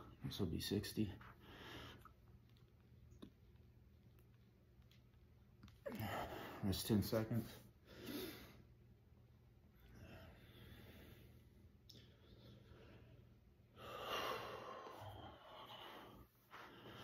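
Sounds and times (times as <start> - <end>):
man breathing: 1.2 - 2.2, 5.9 - 6.7, 7.6 - 8.8, 9.8 - 17.0.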